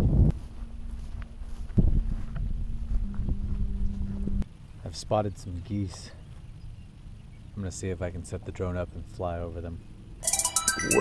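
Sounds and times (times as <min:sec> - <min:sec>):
wind rumbling on microphone: 0:00.0 - 0:04.5
footsteps on grass: 0:00.3 - 0:04.4
faint low hum: 0:00.3 - 0:10.0.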